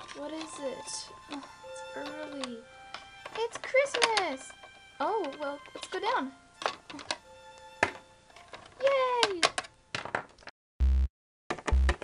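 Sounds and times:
plastic toy clicks and taps: 0.0s - 7.2s, 7.8s - 10.3s
faint background music: 0.0s - 10.0s.

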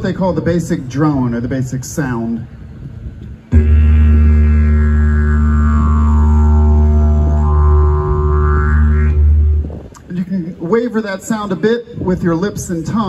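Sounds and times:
didgeridoo drone: 3.5s - 10.1s.

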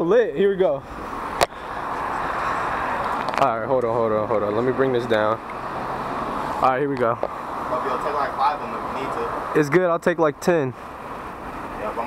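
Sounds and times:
city street traffic: 0.0s - 12.0s.

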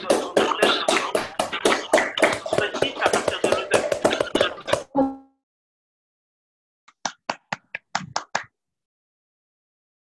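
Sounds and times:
hand clapping: 0.0s - 4.9s, 6.9s - 8.6s.

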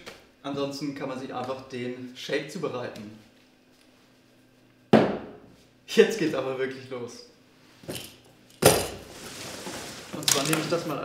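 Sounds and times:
cardboard box scraping on wood floor: 9.0s - 10.2s.

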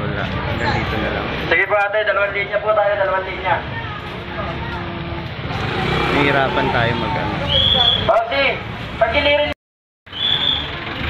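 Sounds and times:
vehicle engine running: 10.3s - 11.0s.

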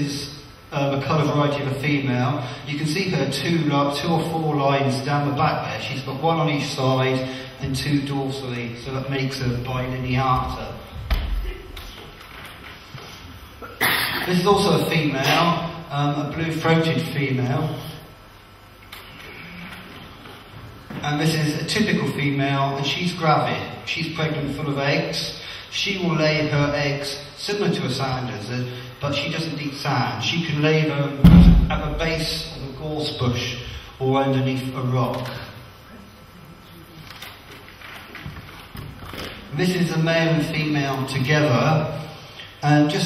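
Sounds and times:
faint steady hiss: 0.0s - 43.0s
low room noise in a hall: 0.0s - 43.0s.

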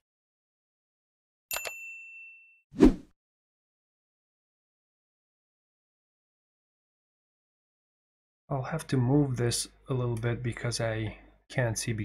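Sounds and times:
bright bell-like ding: 1.5s - 2.6s.

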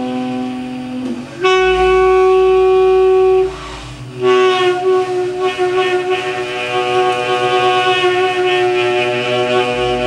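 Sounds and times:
saxophone sustained notes: 0.0s - 10.0s
band playing softly: 0.9s - 10.0s.

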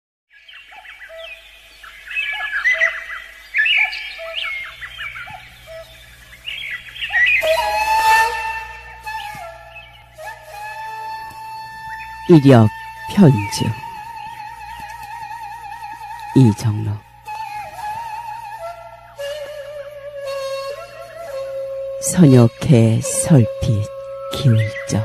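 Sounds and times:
birds chirping and singing: 0.3s - 25.0s
low sustained tone: 0.5s - 25.0s
long held notes: 4.2s - 25.0s
soft background music: 4.6s - 25.0s.

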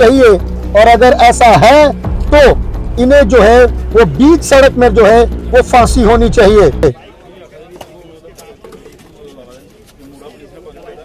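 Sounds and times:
street hum: 0.0s - 11.0s.

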